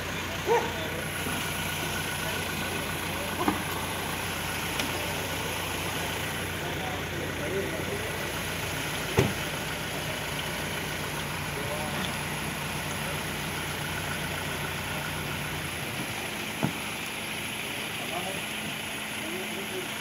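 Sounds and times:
faint voices: 0:00.0 - 0:20.0
vehicle engine idling: 0:00.0 - 0:20.0
sharp thump: 0:09.1 - 0:09.4.

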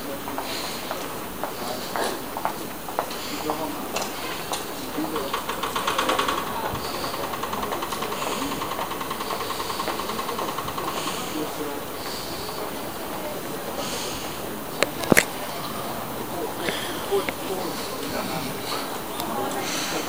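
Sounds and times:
railway platform noise: 0:00.0 - 0:20.0
rapid mechanical pulsing with tone: 0:05.0 - 0:13.1.

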